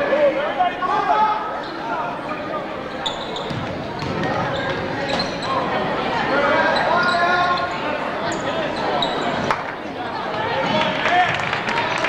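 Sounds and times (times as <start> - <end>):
crowd chatter and calls: 0.0 - 12.0.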